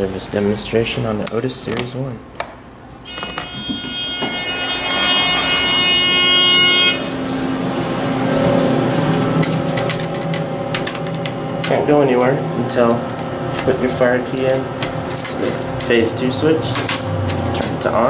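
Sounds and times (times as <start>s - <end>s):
elevator alarm buzzer: 3.0s - 11.6s
lower quieter tone: 3.1s - 15.2s.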